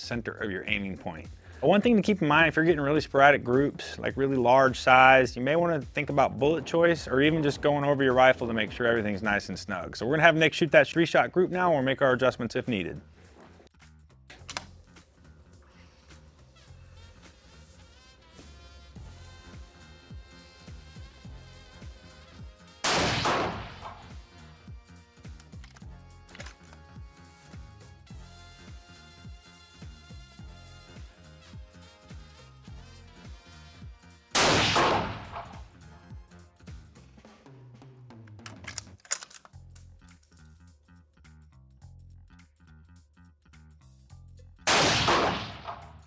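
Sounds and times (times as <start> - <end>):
background music with steady beat: 0.0 - 38.9, 39.5 - 46.0
rifle shot echoing indoors: 22.8 - 24.2, 34.4 - 35.6, 44.7 - 46.0.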